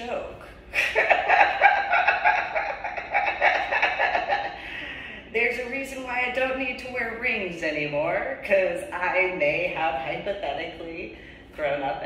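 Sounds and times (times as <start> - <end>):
woman laughing: 0.7 - 5.2.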